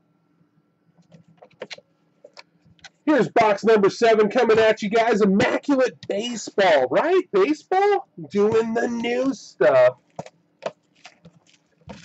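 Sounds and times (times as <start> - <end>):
shrink-wrap crackling: 10.8 - 12.0.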